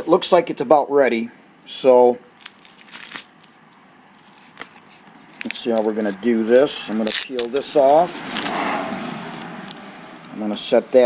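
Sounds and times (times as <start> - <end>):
plastic sheeting crinkling: 2.4 - 3.6.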